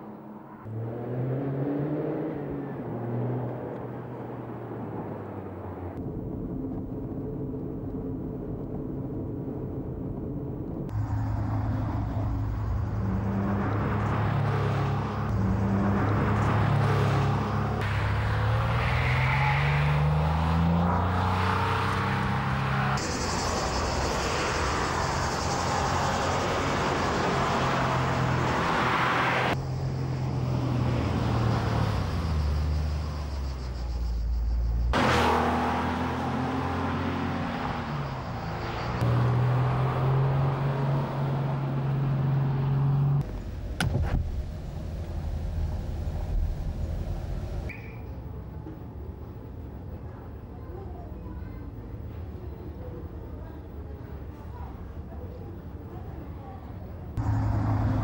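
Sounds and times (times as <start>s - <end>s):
car engine accelerating: 0.1s - 6.0s, 10.9s - 47.7s, 57.2s - 58.0s.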